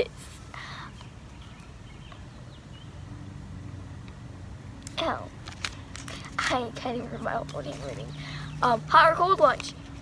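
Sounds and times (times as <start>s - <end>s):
distant traffic rumble: 0.0s - 10.0s
faint engine hum: 0.0s - 10.0s
bird chirps: 0.8s - 3.4s.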